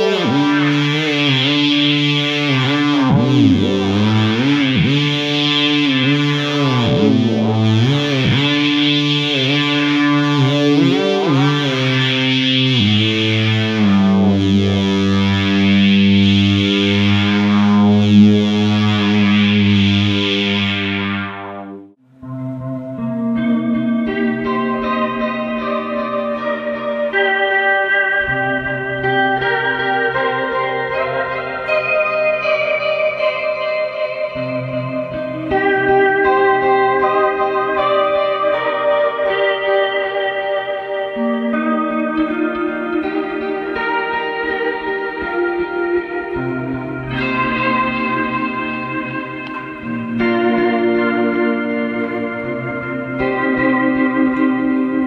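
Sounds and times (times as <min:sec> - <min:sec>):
buzzy synth-like electric guitar: 0:00.0 - 0:55.0
clean ambient electric guitar: 0:00.0 - 0:55.0.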